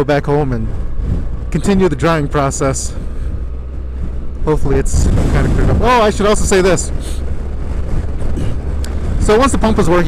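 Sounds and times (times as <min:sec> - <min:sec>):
deep rumble of motorcycle: 0:00.0 - 0:10.0
wind rushing over microphone: 0:00.0 - 0:10.0.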